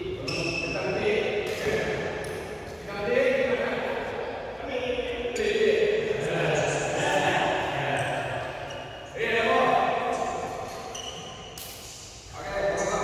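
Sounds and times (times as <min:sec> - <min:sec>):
men talking and calling out: 0:03.0 - 0:10.6.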